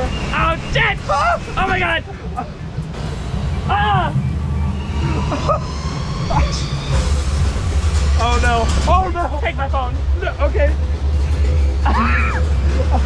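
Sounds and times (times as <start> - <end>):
raft boat rumble: 0.0 - 13.0
person laughing: 1.9 - 2.8, 5.0 - 5.9, 11.4 - 13.0.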